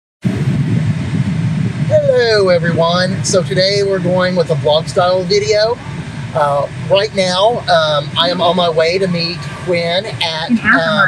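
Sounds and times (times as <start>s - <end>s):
car cabin road rumble: 0.2s - 11.0s
man talking: 1.9s - 11.0s.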